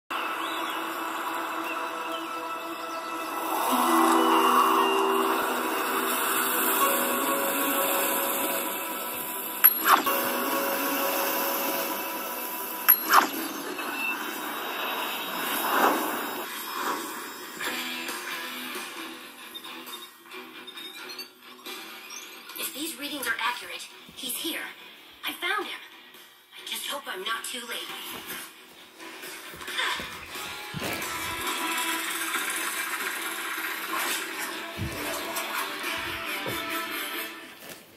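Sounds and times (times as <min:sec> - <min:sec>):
movie soundtrack music from television: 0:00.1 - 0:37.9.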